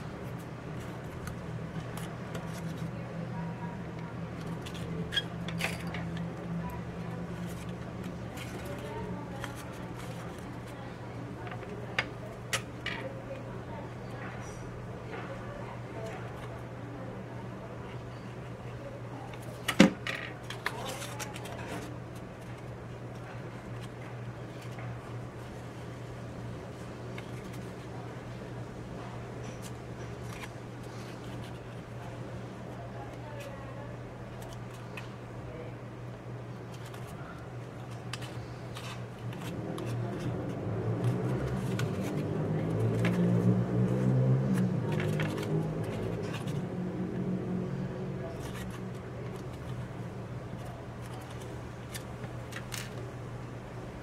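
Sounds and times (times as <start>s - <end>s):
steady low hum: 0.0s - 54.0s
paper rustling and clicking: 0.1s - 13.4s, 19.1s - 25.8s, 26.6s - 35.3s, 36.5s - 47.2s, 48.2s - 53.5s.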